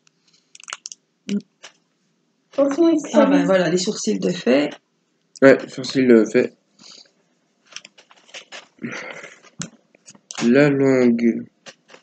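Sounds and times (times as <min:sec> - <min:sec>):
small sharp clicks: 0:00.0 - 0:01.0
person humming mm: 0:08.8 - 0:09.4.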